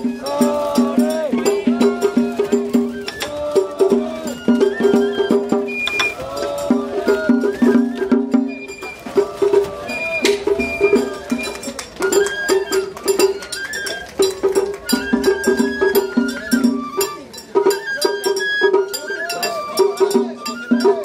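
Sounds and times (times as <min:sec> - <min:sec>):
drum strokes: 0:00.0 - 0:21.0
high bamboo flute melody: 0:00.0 - 0:21.0.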